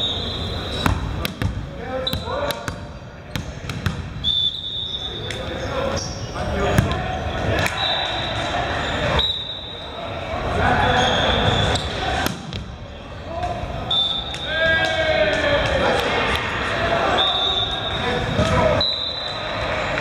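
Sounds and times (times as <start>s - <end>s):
echoing voices in gym: 0.0s - 20.0s.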